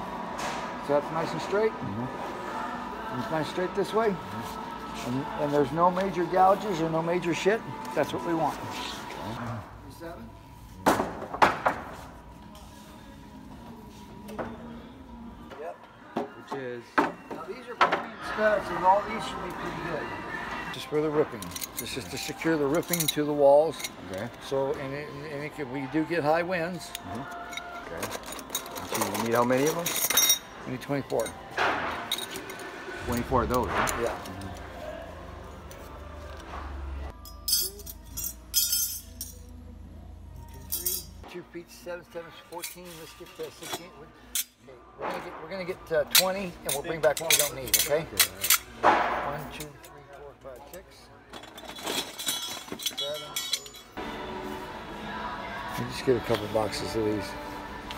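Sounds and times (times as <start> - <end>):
metal brackets clinking: 20.8 - 24.5, 26.9 - 34.7, 37.1 - 39.7, 40.3 - 41.2, 42.5 - 54.0.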